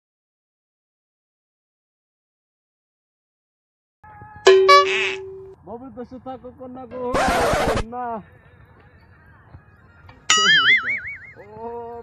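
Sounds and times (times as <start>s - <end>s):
loud wobbling ringing tone: 4.5s - 5.6s, 10.3s - 11.3s.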